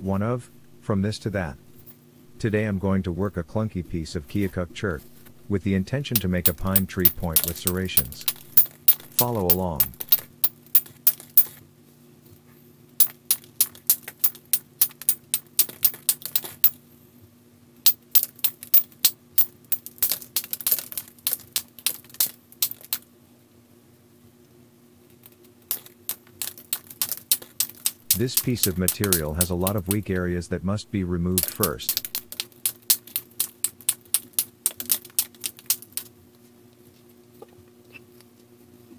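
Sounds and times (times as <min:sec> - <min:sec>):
faint steady hum: 0:00.0 - 0:21.6, 0:22.3 - 0:38.9
knapping tool clinking on stone: 0:06.1 - 0:11.5, 0:13.0 - 0:16.8, 0:17.9 - 0:20.9, 0:25.7 - 0:30.0, 0:31.4 - 0:36.0.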